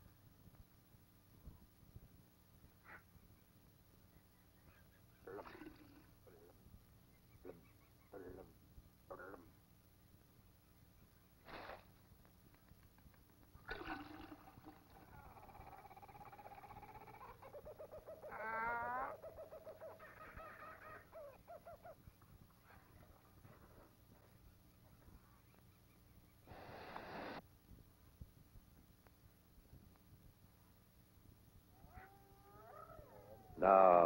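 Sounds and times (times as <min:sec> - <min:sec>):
animal calling: 0:14.3 - 0:23.9, 0:31.7 - 0:34.0.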